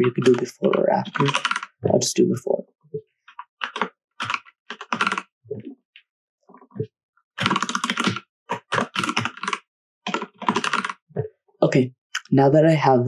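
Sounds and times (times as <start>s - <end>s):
computer keyboard typing: 0.0s - 2.2s, 3.3s - 5.7s, 6.6s - 11.3s.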